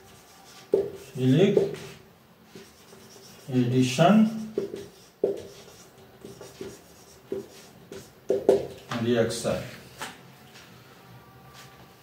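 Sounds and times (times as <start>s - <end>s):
marker pen writing on whiteboard: 0.0s - 9.1s.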